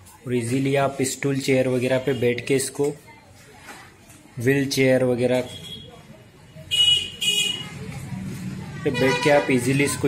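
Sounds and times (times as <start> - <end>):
high-pitched vehicle horn honks: 6.7 - 7.7, 8.9 - 9.7.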